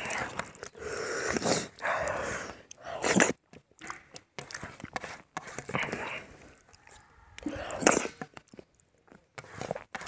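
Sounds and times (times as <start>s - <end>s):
hand squelching rice and gravy: 0.0s - 6.9s, 7.7s - 10.0s.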